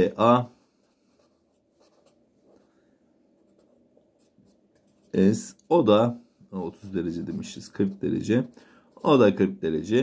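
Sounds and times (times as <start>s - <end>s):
marker pen scratching on paper: 0.8s - 2.6s, 3.4s - 5.5s, 6.7s - 9.4s.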